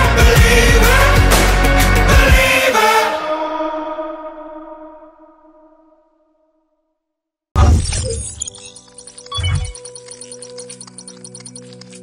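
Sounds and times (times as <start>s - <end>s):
held electronic tones: 7.9s - 12.0s.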